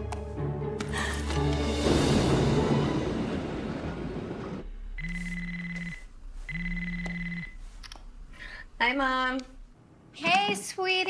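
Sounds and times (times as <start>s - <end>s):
music: 0.0s - 4.6s
phone ringtone trilling: 5.0s - 7.6s.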